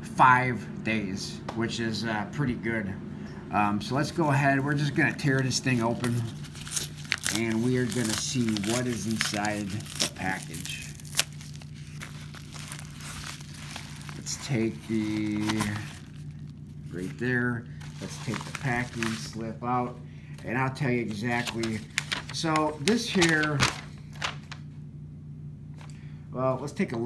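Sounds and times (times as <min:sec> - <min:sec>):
low hum: 0:00.0 - 0:26.5
paper envelope crinkling: 0:04.0 - 0:24.7
envelope tearing: 0:04.5 - 0:19.5, 0:21.0 - 0:24.6.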